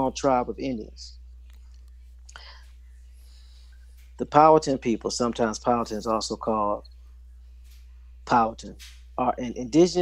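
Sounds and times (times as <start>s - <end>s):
soft hiss: 0.0s - 10.0s
steady low hum: 0.0s - 10.0s.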